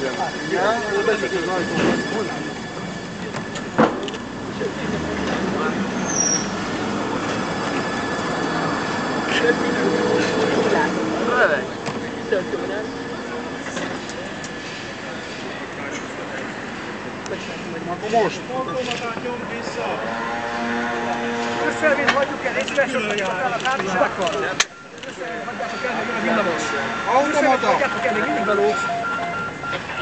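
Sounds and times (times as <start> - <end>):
steady machine drone: 0.0 - 22.8
tram wheel squeal: 0.0 - 30.0
tram wheels rolling on rails: 0.0 - 30.0.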